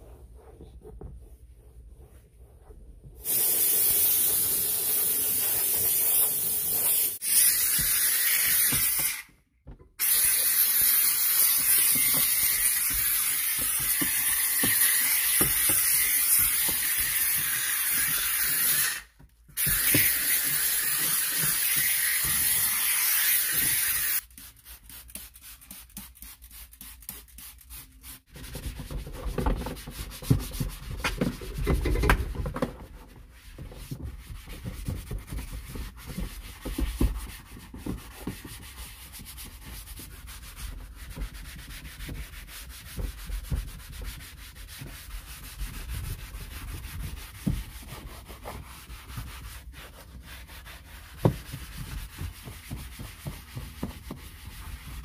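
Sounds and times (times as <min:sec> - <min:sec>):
steam cleaner hissing: 0:03.2 - 0:09.3, 0:10.0 - 0:19.0, 0:19.6 - 0:24.2.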